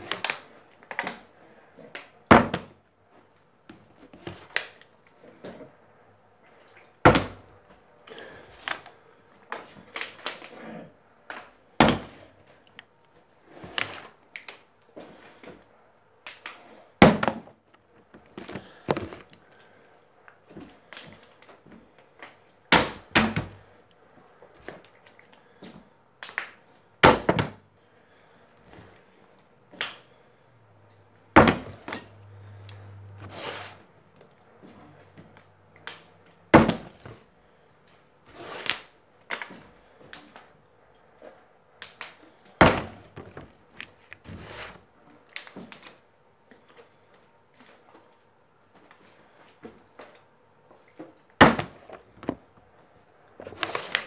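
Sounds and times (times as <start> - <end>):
plastic bottle landing thunk: 2.3 - 2.7, 7.1 - 7.4, 17.0 - 17.5, 31.4 - 32.0, 36.6 - 37.1, 42.6 - 43.5, 51.4 - 52.4.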